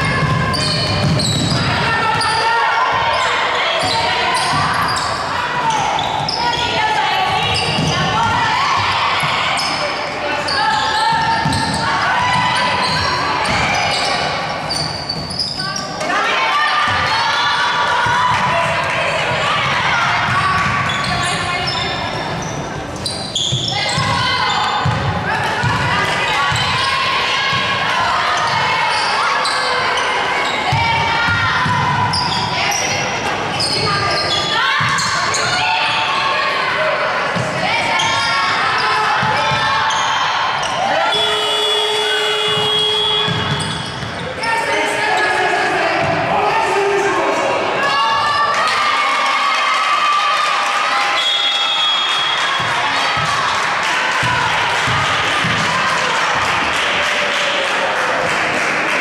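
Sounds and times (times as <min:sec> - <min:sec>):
players calling out: 0:00.0 - 0:56.9.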